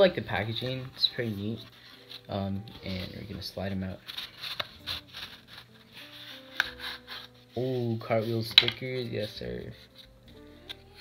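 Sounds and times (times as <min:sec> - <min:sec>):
card scraping on card: 0:00.4 - 0:09.3.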